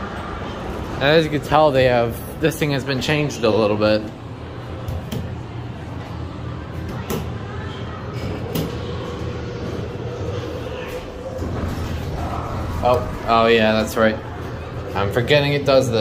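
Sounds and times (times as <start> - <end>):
low hum in elevator cab: 4.1 - 15.0
elevator doors closing: 11.0 - 14.6.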